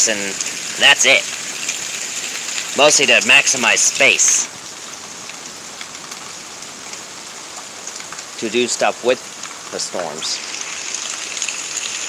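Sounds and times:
steady rain hiss: 0.0 - 12.0.

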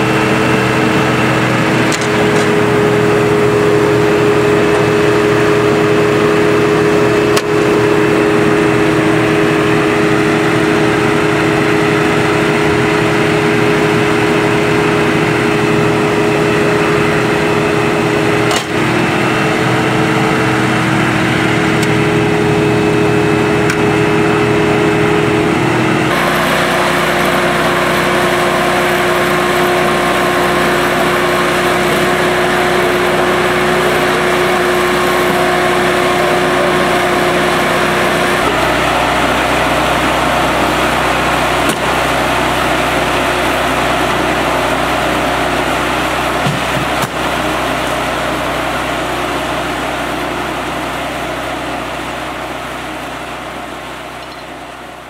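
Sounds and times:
fire engine droning: 0.0 - 55.0.

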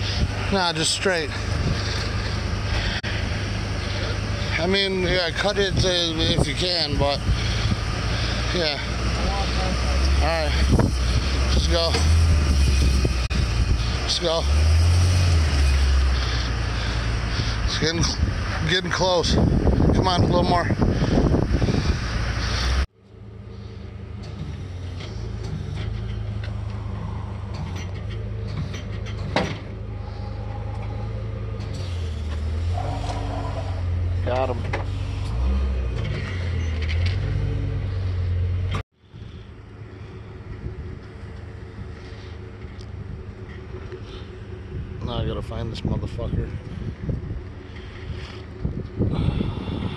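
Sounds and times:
truck engine rumbling: 0.0 - 49.9.

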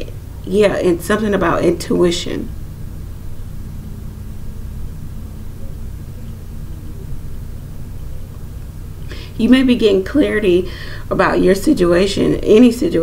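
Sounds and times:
faint hum: 0.0 - 13.0
low background rumble: 0.0 - 13.0.

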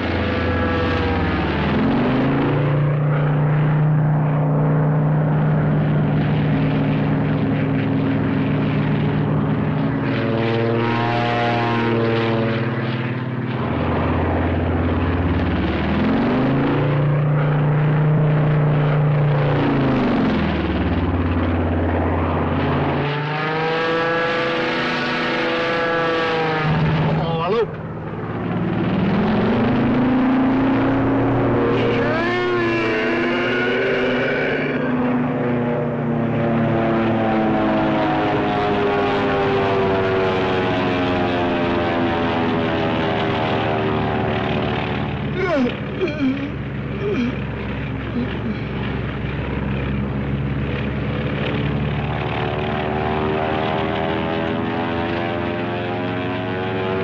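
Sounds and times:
propeller airplane engines: 0.0 - 57.0.

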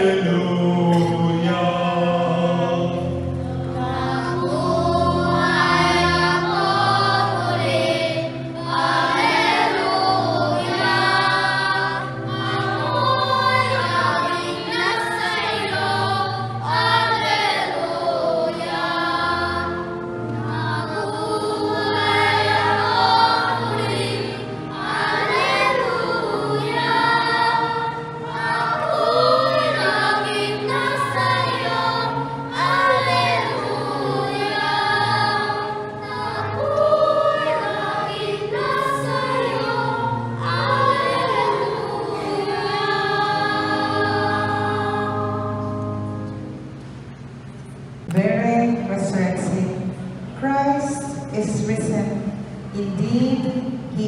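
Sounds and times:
children singing a hymn: 0.0 - 46.5
musical accompaniment: 0.0 - 54.0.

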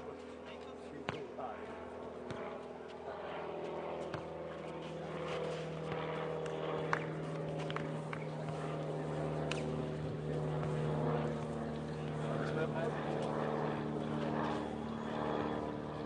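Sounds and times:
ball being kicked: 1.0 - 1.3, 2.2 - 2.6
engine drone: 3.7 - 16.0.

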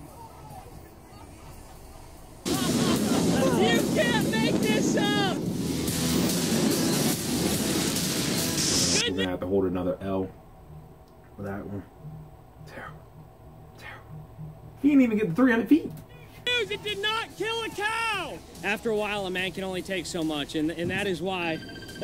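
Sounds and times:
excited shouting: 0.0 - 1.7, 2.4 - 5.4, 9.0 - 9.3, 16.1 - 19.5
rocket motor rush: 2.4 - 9.0
music: 5.4 - 9.0.

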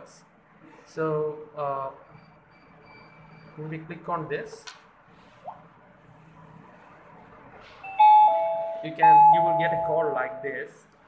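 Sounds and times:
two-note ding-dong chime: 7.9 - 10.4.

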